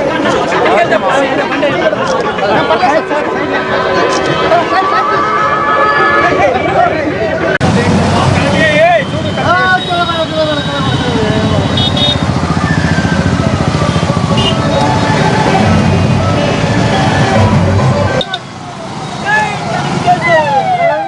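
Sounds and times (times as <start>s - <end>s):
crowd chatter and shouting: 0.0s - 21.0s
motorcycle engines: 0.0s - 21.0s
voices calling out: 0.0s - 21.0s.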